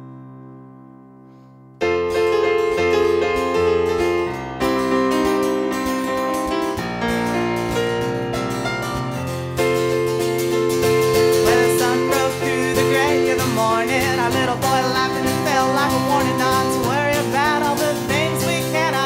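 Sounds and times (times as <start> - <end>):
keyboard playing piano chords: 0.0 - 19.0
woman singing: 11.5 - 19.0.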